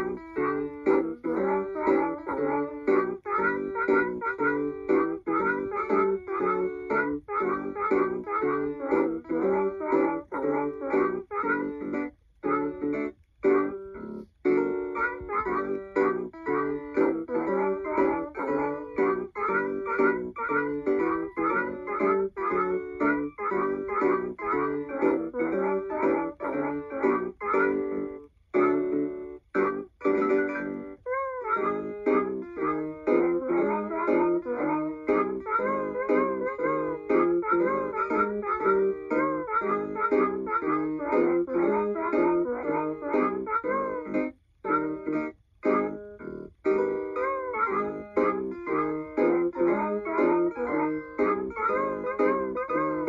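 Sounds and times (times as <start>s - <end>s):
toy guitar playing a tune: 0.0s - 53.0s.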